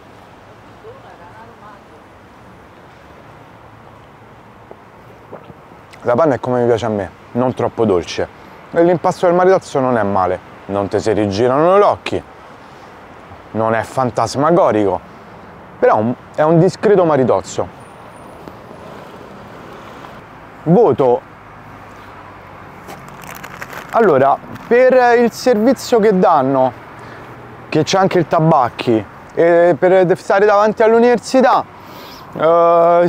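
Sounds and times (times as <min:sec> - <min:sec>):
street traffic: 0:00.0 - 0:33.0.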